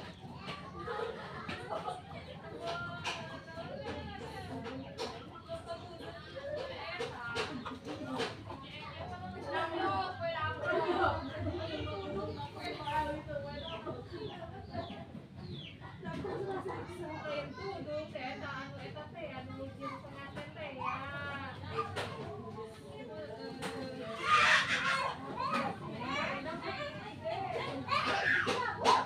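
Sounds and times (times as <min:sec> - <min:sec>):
children talking and calling out: 0:00.0 - 0:29.0
murmur of voices: 0:00.0 - 0:29.0.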